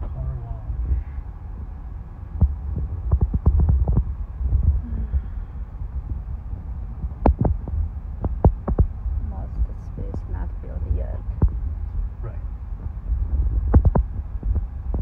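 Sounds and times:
car driving rumble inside cabin: 0.0s - 15.0s
sharp knocks and thumps: 2.4s - 5.0s, 7.0s - 9.0s, 12.8s - 15.0s.

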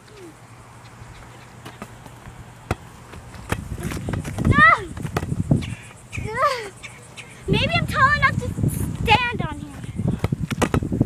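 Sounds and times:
girl exclaiming: 3.8s - 5.0s, 6.2s - 6.8s, 7.5s - 9.8s.

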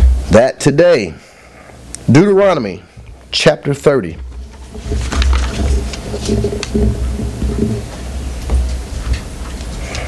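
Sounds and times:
pages being leafed through: 4.4s - 10.0s.

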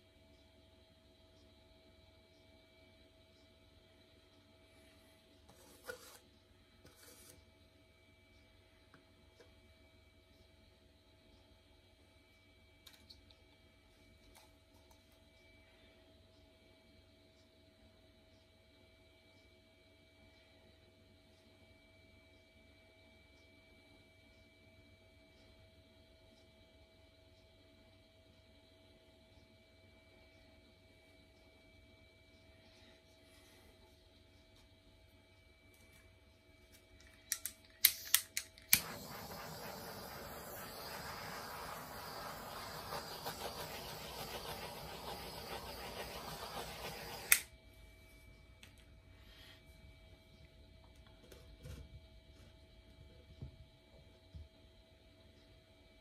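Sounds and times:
air blower rushing: 38.7s - 47.4s.

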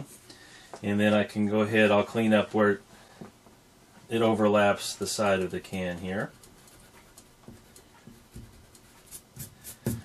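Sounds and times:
eraser rubbing on paper: 5.4s - 10.0s.

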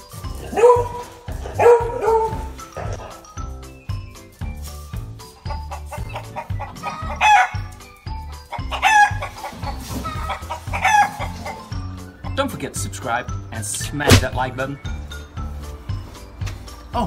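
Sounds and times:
background music with steady beat: 0.0s - 17.0s.

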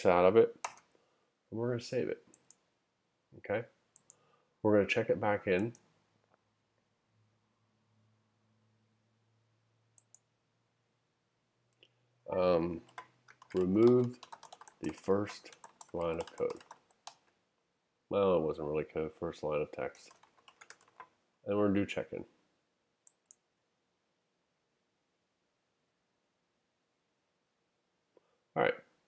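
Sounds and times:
computer mouse clicks: 0.6s - 1.0s, 4.0s - 4.2s, 10.0s - 10.2s, 12.8s - 17.4s, 19.9s - 21.1s, 23.0s - 23.4s
faint ticks: 4.0s - 4.2s.

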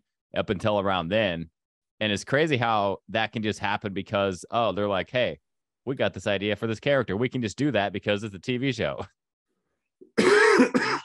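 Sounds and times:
man laughing and coughing: 10.2s - 11.0s.

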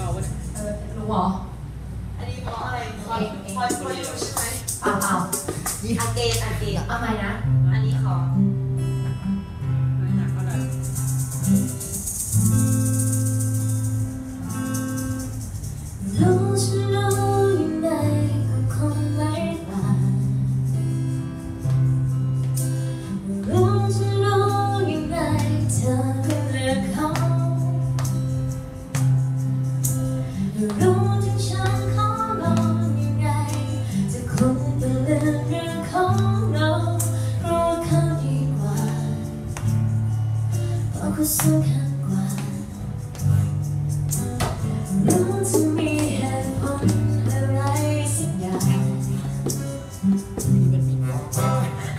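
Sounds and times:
acoustic guitar: 0.0s - 51.9s
woman singing: 16.0s - 20.6s, 23.1s - 28.2s, 30.4s - 39.6s, 40.8s - 43.4s, 44.9s - 49.7s.

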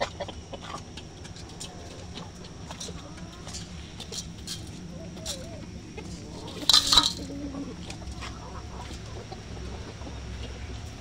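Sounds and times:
hens clucking: 0.0s - 11.0s.

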